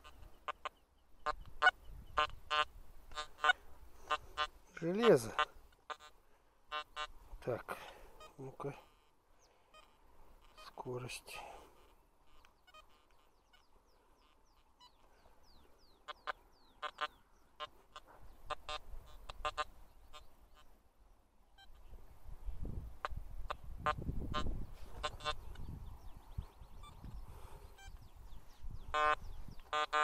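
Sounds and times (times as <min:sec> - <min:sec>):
metal detector beeps: 0:28.9 - 0:30.0.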